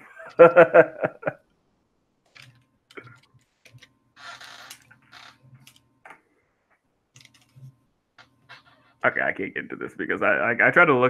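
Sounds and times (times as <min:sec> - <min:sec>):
low steady hum: 0:00.0 - 0:11.0
typing on computer keyboard: 0:02.3 - 0:03.9, 0:07.2 - 0:07.7.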